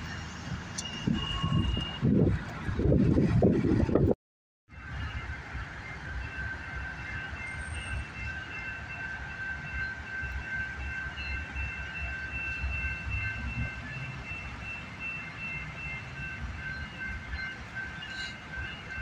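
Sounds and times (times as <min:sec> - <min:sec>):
train rumbling: 0:00.0 - 0:19.0
high ringing squeal: 0:00.8 - 0:02.1, 0:04.8 - 0:19.0.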